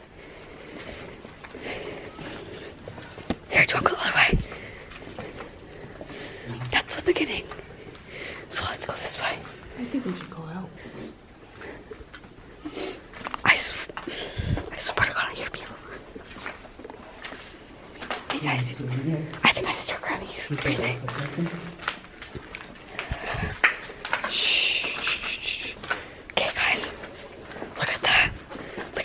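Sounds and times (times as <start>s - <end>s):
person whispering: 8.5s - 9.5s, 13.4s - 13.9s, 14.7s - 15.8s, 19.4s - 21.3s, 24.3s - 25.8s, 26.4s - 27.0s.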